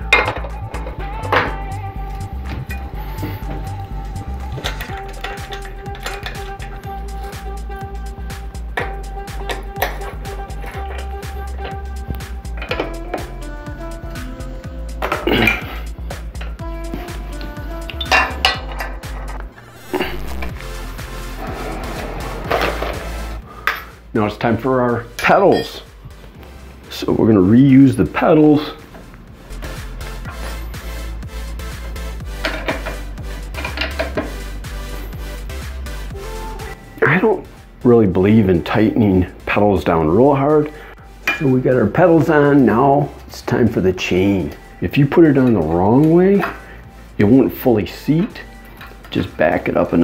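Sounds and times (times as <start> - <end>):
background music with held notes: 0.0 - 50.0.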